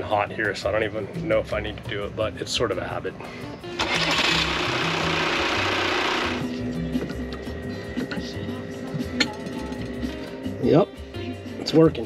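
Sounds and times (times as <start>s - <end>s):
diesel engine starting and running: 3.6s - 10.5s.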